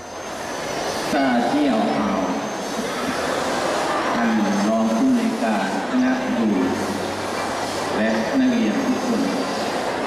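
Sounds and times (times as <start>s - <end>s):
steady rushing background noise: 0.0s - 10.0s
man speaking into a microphone: 1.1s - 2.5s, 4.2s - 6.9s, 8.0s - 9.5s.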